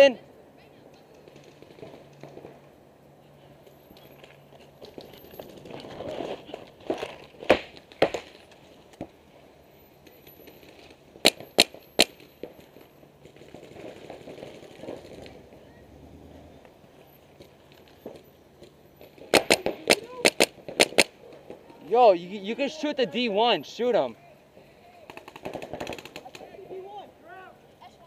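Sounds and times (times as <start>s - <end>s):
paintball marker shots: 11.2s - 12.3s, 19.2s - 21.2s.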